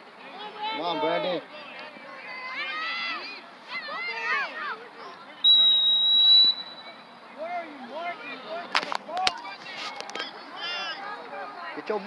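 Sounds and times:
referee's whistle: 0:05.4 - 0:07.0.

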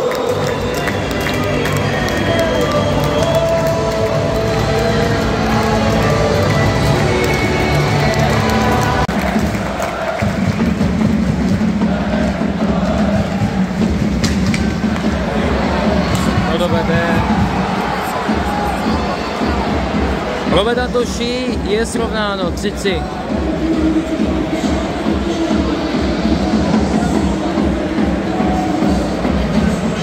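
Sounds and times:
loud crowd noise: 0:00.0 - 0:30.0
music over loudspeakers: 0:00.0 - 0:30.0.

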